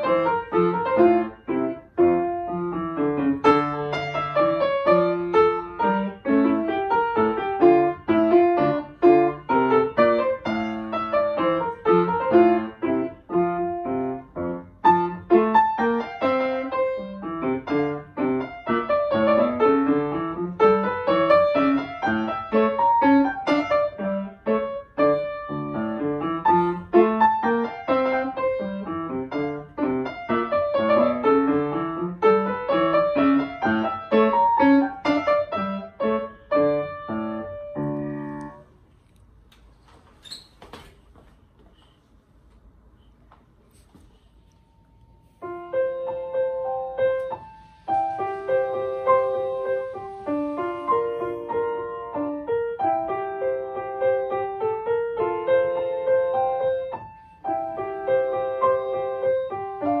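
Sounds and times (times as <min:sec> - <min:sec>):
grand piano quick notes: 0:44.1 - 1:00.0.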